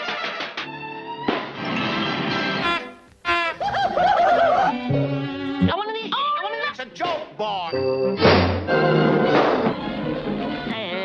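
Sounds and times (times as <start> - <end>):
orchestral cartoon music: 0.0 - 6.4, 7.7 - 11.0
comic punch sound effect: 8.2 - 8.7.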